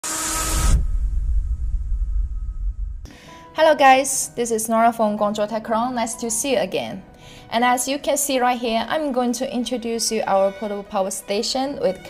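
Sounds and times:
deep low rumble: 0.2 - 3.1.

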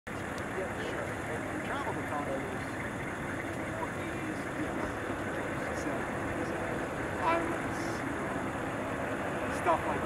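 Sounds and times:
distant jet engine: 0.1 - 10.0
people's voices: 0.1 - 10.0.

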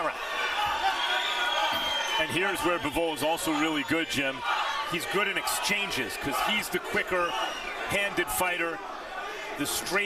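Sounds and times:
crowd voices din: 0.0 - 10.0.

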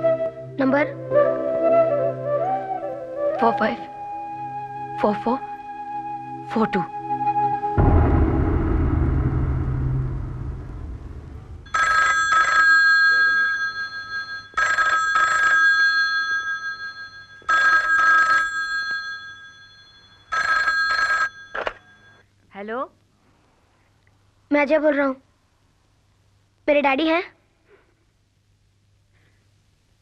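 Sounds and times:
low rumble: 7.3 - 11.8
telephone bell ringing: 11.7 - 22.2.

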